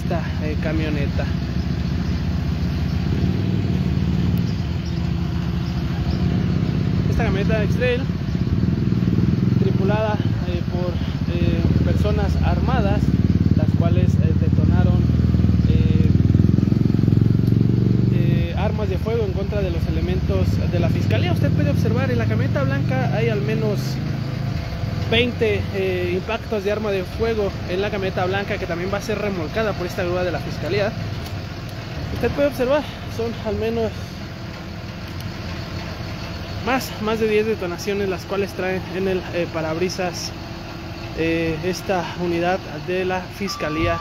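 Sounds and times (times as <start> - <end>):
truck engine idling: 0.0 - 44.0.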